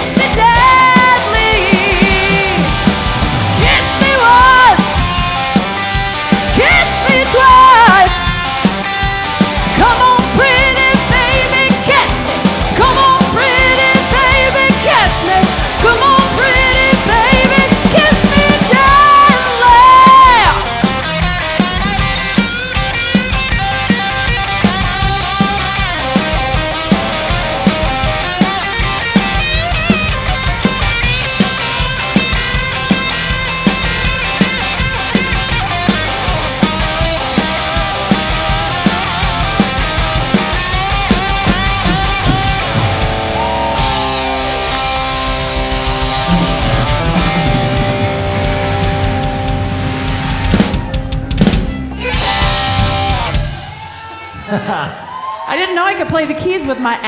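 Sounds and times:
steady drum beat: 0.0s - 54.1s
hard rock band playing: 0.0s - 55.4s
crashing final hits: 41.6s - 53.8s.

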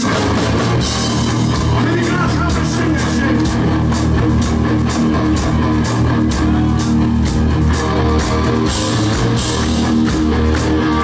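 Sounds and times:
bass guitar: 0.0s - 11.0s
drum kit beat: 0.0s - 11.0s
electric guitar: 0.0s - 11.0s.

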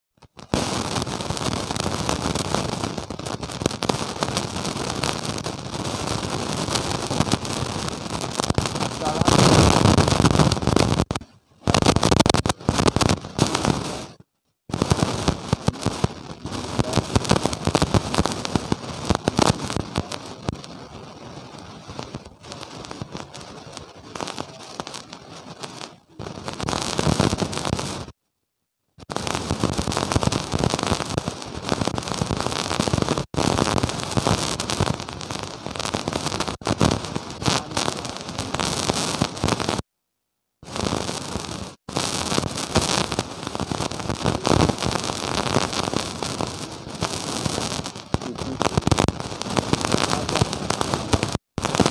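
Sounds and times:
harsh distorted crackling: 0.1s - 28.2s, 29.0s - 39.9s, 40.6s - 51.9s.

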